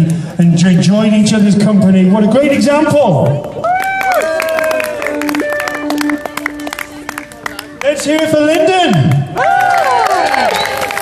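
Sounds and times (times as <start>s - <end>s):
crowd clapping: 3.6s - 11.0s.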